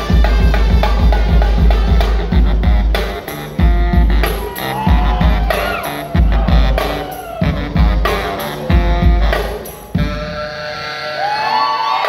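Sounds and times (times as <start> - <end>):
baritone saxophone long notes: 0.0 - 11.8.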